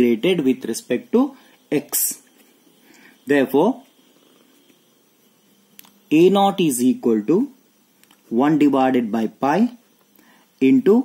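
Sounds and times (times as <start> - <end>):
low room hum: 0.0 - 11.0
small click: 5.8 - 6.0.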